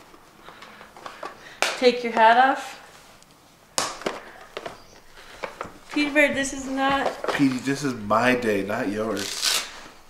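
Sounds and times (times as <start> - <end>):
packet crackle: 7.0 - 10.0.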